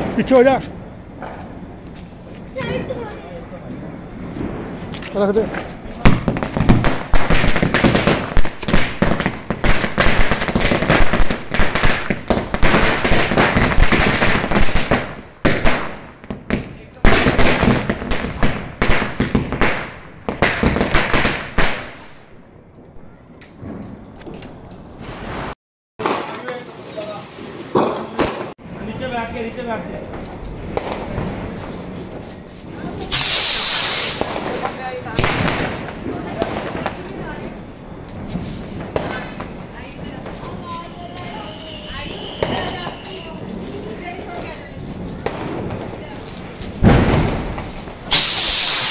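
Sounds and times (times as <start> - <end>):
firecrackers banging: 0.0 - 48.9
faint firework cracks: 30.0 - 48.9.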